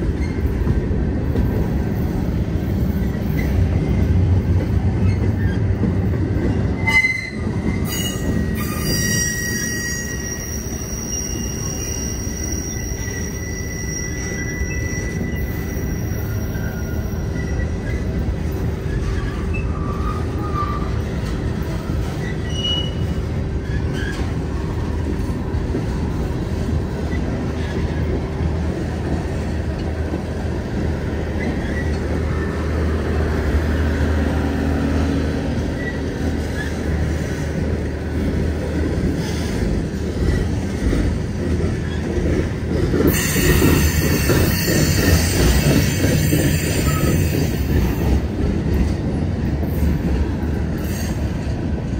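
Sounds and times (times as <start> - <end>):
freight train rumbling past: 0.0 - 51.9.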